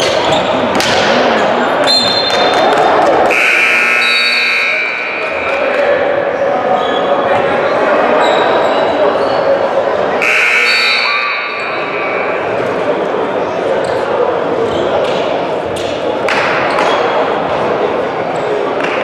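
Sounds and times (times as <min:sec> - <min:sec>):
scoreboard buzzer: 0:03.3 - 0:05.4, 0:10.2 - 0:11.8.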